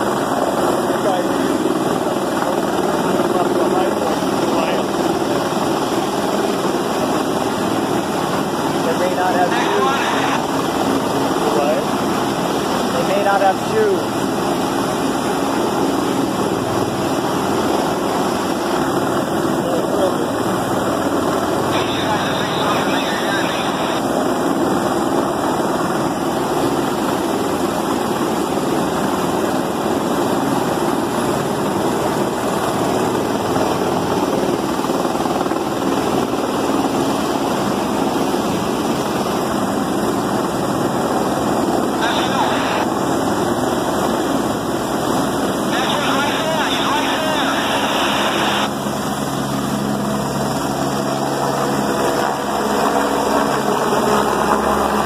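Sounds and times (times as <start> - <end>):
helicopter hovering: 0.0 - 55.0.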